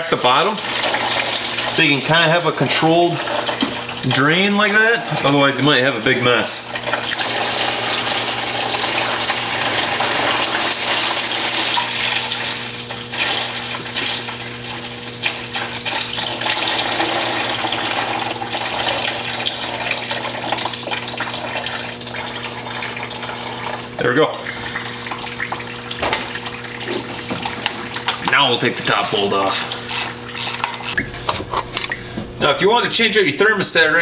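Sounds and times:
liquid pouring into container: 0.1s - 28.3s.

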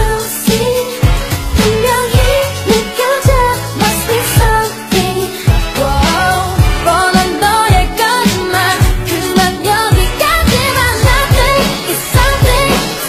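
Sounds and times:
pop song with sung vocals: 0.0s - 13.0s.

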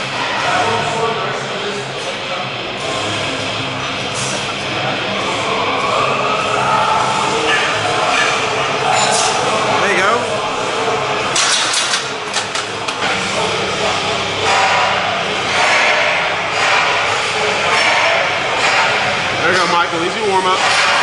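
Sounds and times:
indistinct voices: 0.0s - 21.0s
steady background din: 0.0s - 21.0s
sharp clanks: 11.3s - 13.1s.

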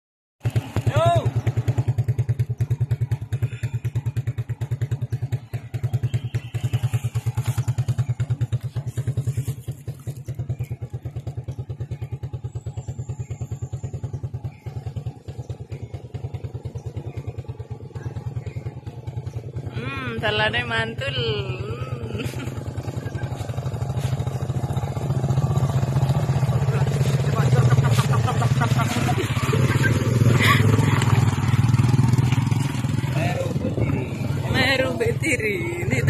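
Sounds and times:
motorcycle engine running: 0.4s - 36.0s.

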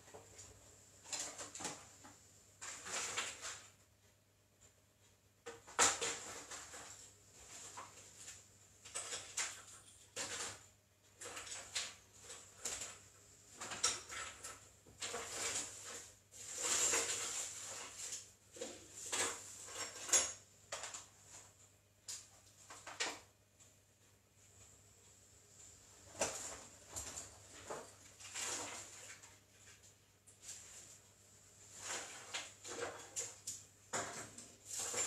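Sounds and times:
rustling and clattering objects: 0.0s - 24.9s, 25.5s - 35.0s.

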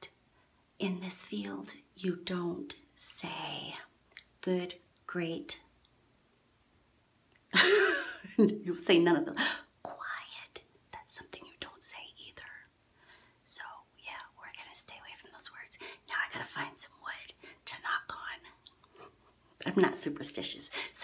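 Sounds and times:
woman whispering: 0.8s - 3.9s, 9.8s - 12.7s, 13.5s - 18.6s, 19.6s - 21.0s.

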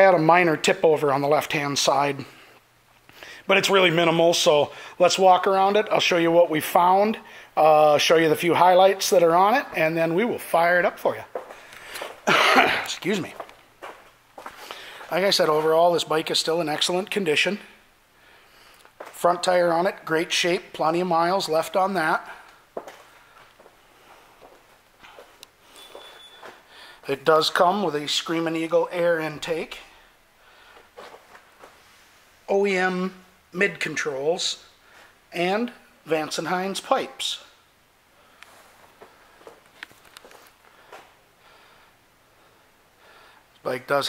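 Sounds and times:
faint footsteps: 10.4s - 16.0s, 18.5s - 19.5s, 22.2s - 27.0s, 28.8s - 32.3s, 38.4s - 41.2s
camera handling rustling: 39.6s - 40.6s.

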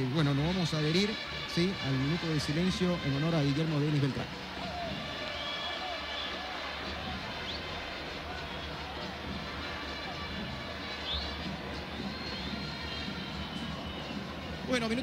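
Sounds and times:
murmur of stadium crowd: 0.0s - 15.0s.

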